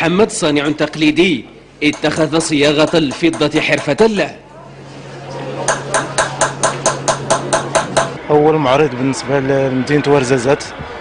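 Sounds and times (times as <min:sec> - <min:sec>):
hammer striking sheet metal: 0:01.9 - 0:04.2, 0:05.7 - 0:08.2.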